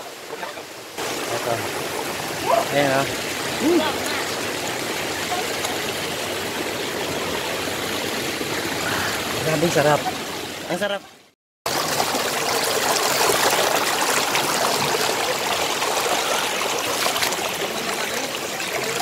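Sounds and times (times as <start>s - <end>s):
water running off rock: 0.0s - 10.4s, 11.7s - 19.0s.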